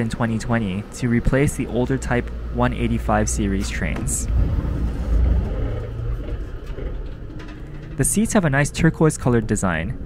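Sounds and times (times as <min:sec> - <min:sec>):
train interior rumble: 0:00.0 - 0:10.0.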